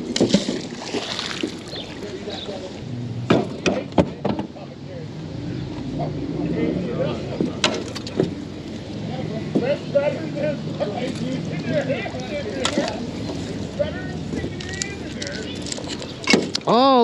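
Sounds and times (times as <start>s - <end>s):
wet rope hauled in: 0.0s - 2.4s
water dripping and splashing: 0.0s - 2.8s
low hum: 0.5s - 16.3s
sharp knocks: 3.2s - 4.5s.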